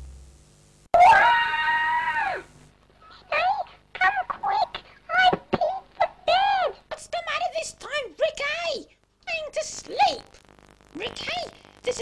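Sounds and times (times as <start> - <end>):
child screaming: 1.0 - 2.5, 5.2 - 6.8.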